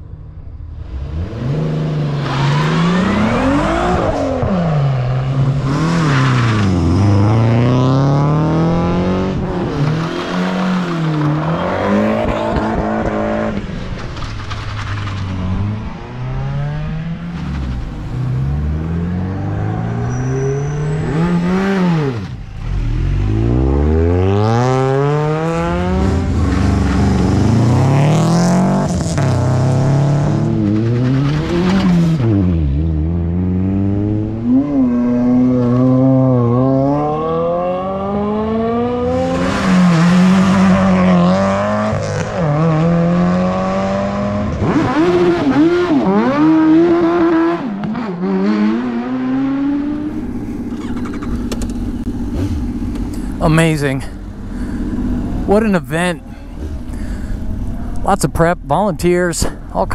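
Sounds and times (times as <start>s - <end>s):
race cars accelerating hard: 0.8s - 58.5s.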